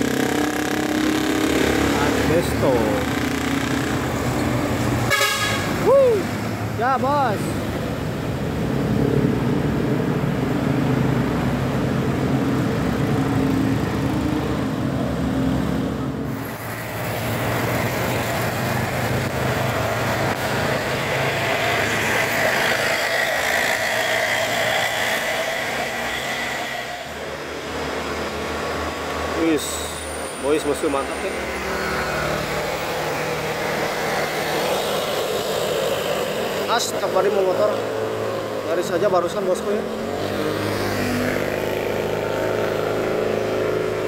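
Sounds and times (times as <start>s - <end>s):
diesel truck engine passing: 0.0s - 44.0s
passing motorcycles and cars: 0.0s - 44.0s
warbling horn: 5.1s - 5.8s.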